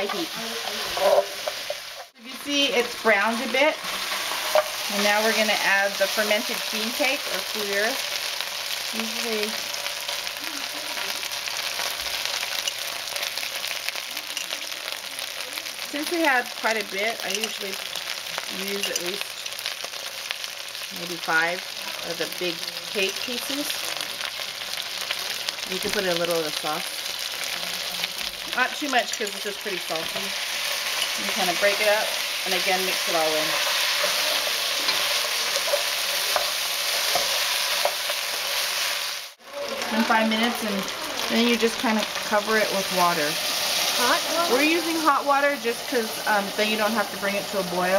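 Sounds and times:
spatula scraping and tapping pot: 0:00.0 - 0:02.2, 0:04.2 - 0:04.8
meat sizzling in hot oil: 0:00.0 - 0:47.9.

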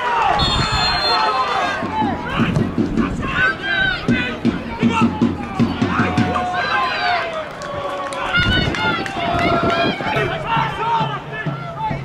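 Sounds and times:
people shouting and calling out: 0:00.0 - 0:12.0.

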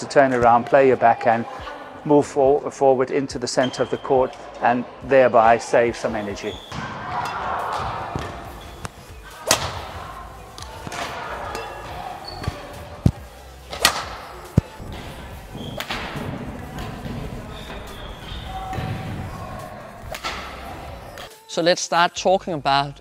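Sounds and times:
racket hitting shuttlecock: 0:06.7 - 0:14.7, 0:20.0 - 0:20.6.

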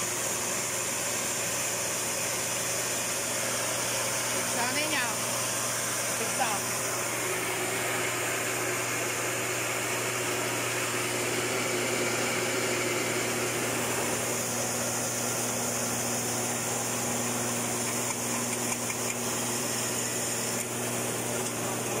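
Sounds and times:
rice mill motor humming: 0:00.0 - 0:22.0.

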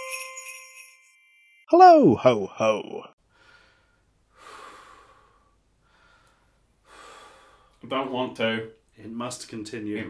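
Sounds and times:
man breathing out: 0:03.3 - 0:07.8.

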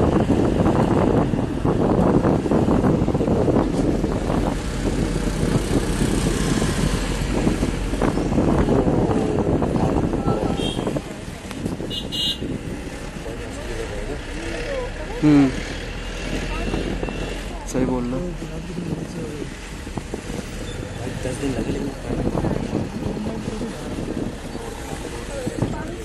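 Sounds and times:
wind rushing past: 0:00.0 - 0:13.2
vehicle engine and tyres rumbling: 0:00.0 - 0:26.0.

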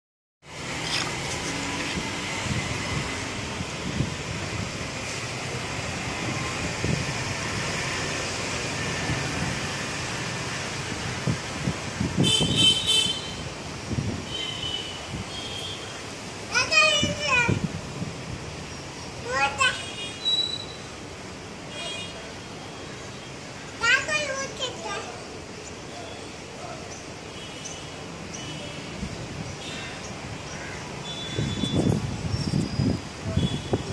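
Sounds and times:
distant road traffic hum: 0:00.4 - 0:33.9
outdoor background noise: 0:00.4 - 0:33.9
child calling out loudly: 0:16.5 - 0:17.8, 0:19.2 - 0:20.0, 0:23.8 - 0:25.3.

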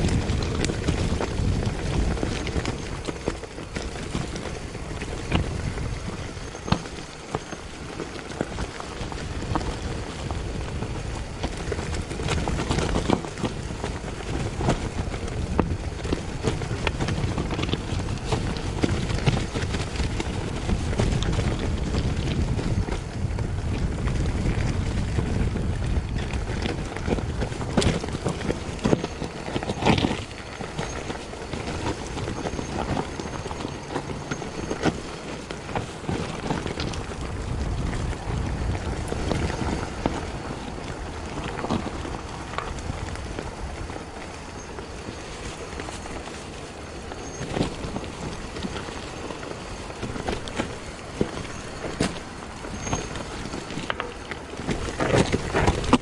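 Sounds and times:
bike knocking and rattling: 0:00.0 - 0:56.0
tyres rolling over dirt and leaves: 0:00.0 - 0:56.0
wind rumbling on microphone: 0:00.0 - 0:56.0.

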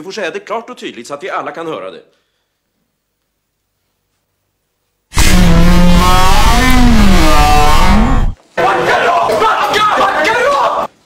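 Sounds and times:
loud distorted swooping sound effect: 0:05.1 - 0:08.4
heavy low rumble: 0:05.2 - 0:08.4.

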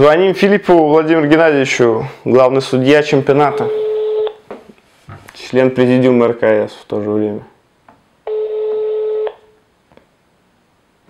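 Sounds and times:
phone ringback tone: 0:03.4 - 0:04.4, 0:08.3 - 0:09.5.

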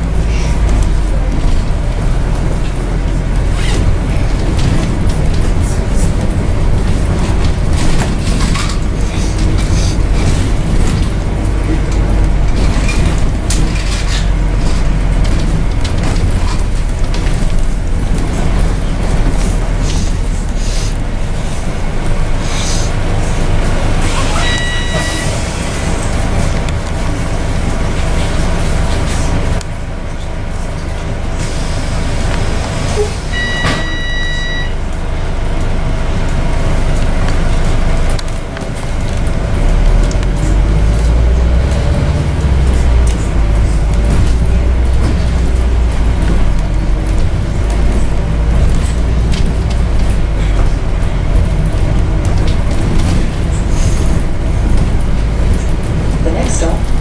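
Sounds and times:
bus engine rumble: 0:00.0 - 0:57.0
road noise: 0:00.0 - 0:57.0
short electronic beeps: 0:24.3 - 0:25.4, 0:33.3 - 0:34.9.

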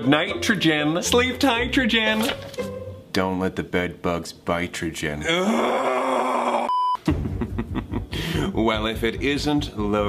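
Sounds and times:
man screaming angrily: 0:05.2 - 0:06.7.

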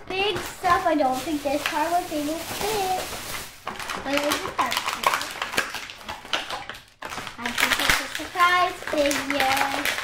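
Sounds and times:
person speaking: 0:00.0 - 0:03.2, 0:03.9 - 0:05.4
plastic wrapping crinkling: 0:00.1 - 0:10.0.

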